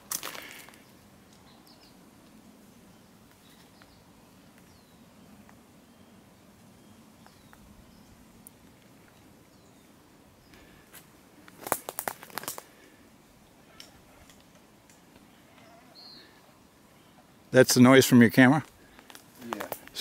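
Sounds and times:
faint high bird chirps: 0:15.3 - 0:17.3.

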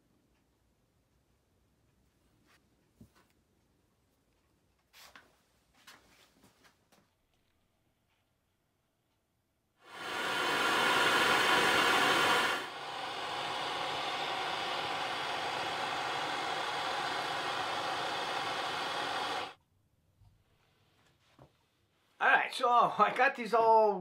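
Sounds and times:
steady rushing hiss: 0:09.8 - 0:19.6.

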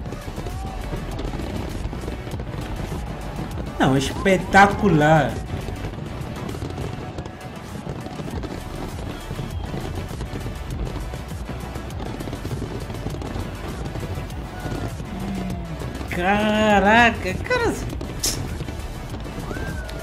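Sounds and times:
fireworks bursting and crackling: 0:00.0 - 0:20.0
low rumble: 0:13.4 - 0:16.4.

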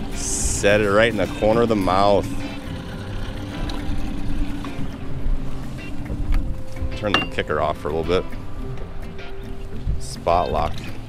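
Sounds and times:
outboard motor running: 0:00.0 - 0:11.0
waves on boat: 0:00.0 - 0:11.0
wind noise: 0:03.6 - 0:11.0.

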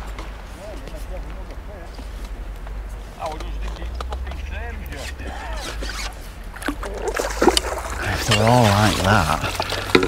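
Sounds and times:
fish splashing at surface: 0:06.6 - 0:10.0.

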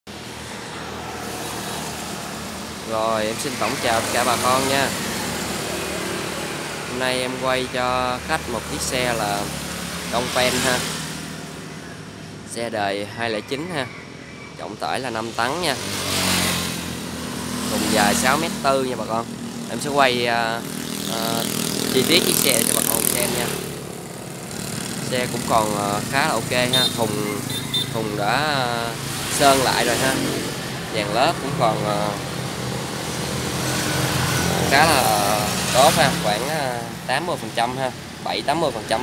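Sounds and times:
motorcycle passing: 0:00.1 - 0:13.0, 0:13.6 - 0:39.0
road noise hum: 0:00.1 - 0:39.0.

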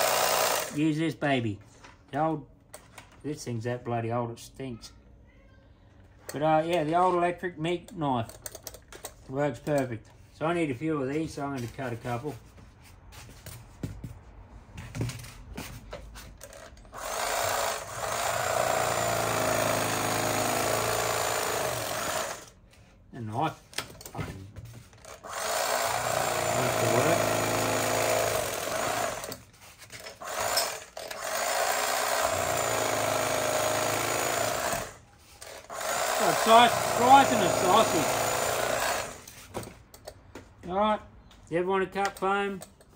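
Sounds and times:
electric carving knife motor hum: 0:25.1 - 0:29.4, 0:35.6 - 0:39.3.

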